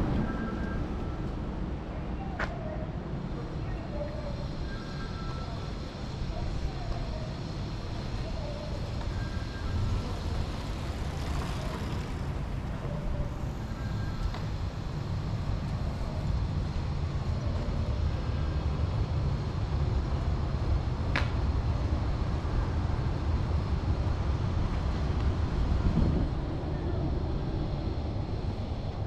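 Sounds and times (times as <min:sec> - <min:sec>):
distant traffic rumble: 0:00.0 - 0:29.0
vehicle passing: 0:09.9 - 0:13.6.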